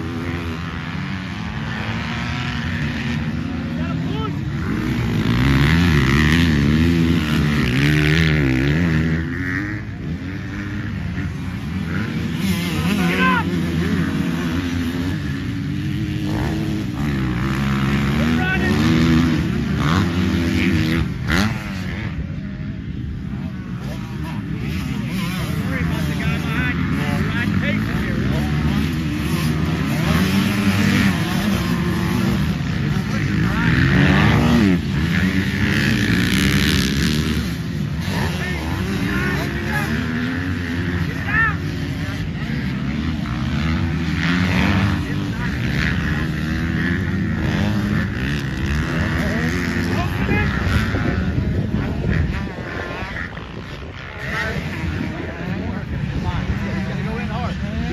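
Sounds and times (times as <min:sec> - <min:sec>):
dirt bike engines revving: 0:00.0 - 0:57.9.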